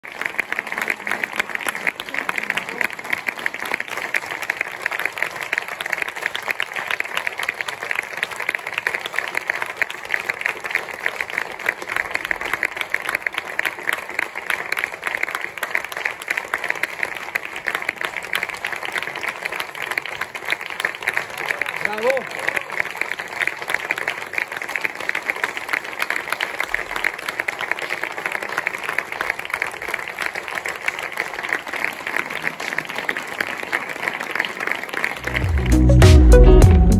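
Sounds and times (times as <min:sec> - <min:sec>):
audience applauding: 0:00.0 - 0:36.9.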